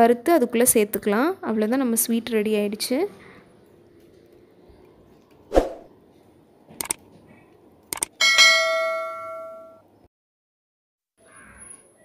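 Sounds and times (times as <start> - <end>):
ringing metallic clang: 8.2 - 9.8.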